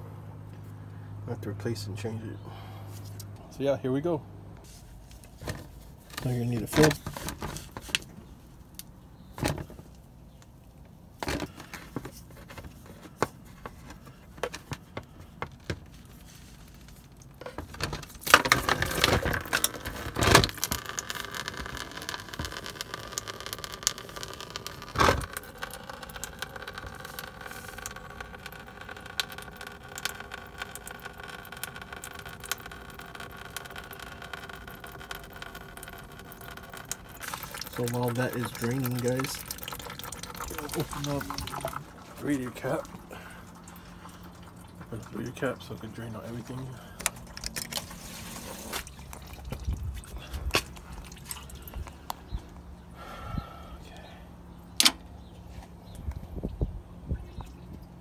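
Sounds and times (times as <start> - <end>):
coolant pouring into drain pan: 17.2 - 52.1.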